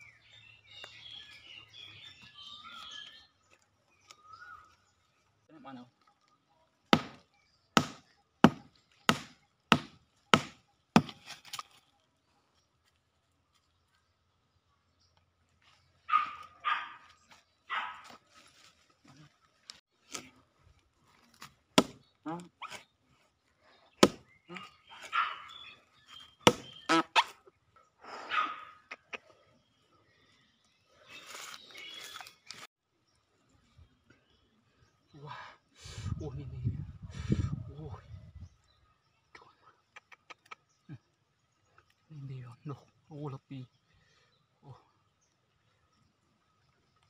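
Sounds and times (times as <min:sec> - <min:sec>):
hatchet chopping wood: 0:06.9 - 0:11.6, 0:21.4 - 0:22.0, 0:24.0 - 0:24.6, 0:26.4 - 0:27.0.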